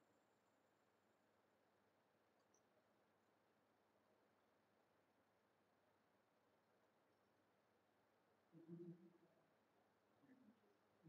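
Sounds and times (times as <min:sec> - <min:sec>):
faint steady background hiss: 0:00.0 - 0:11.0.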